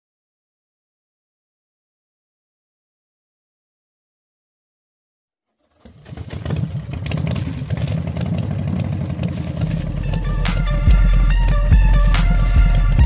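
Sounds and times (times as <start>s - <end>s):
electronic music with deep bass: 7.2s - 13.0s
loud distorted subwoofer bass: 9.0s - 13.0s.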